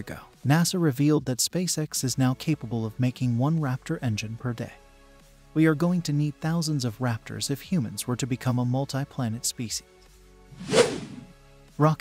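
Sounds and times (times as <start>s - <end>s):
faint background music: 0.0s - 12.0s
whoosh sound effect: 10.6s - 11.3s.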